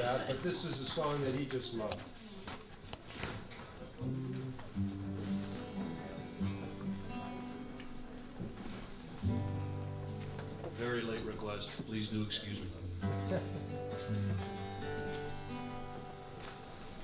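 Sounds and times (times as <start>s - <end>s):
acoustic guitar plucked notes: 4.0s - 17.0s.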